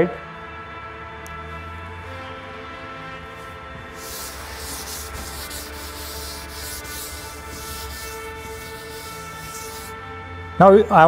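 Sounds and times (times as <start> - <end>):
duster scraping chalkboard: 4.0 - 10.0.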